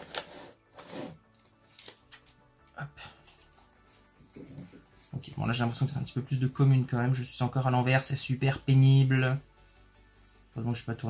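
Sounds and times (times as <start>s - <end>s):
cards flipped and slid by hand: 0.0s - 5.1s.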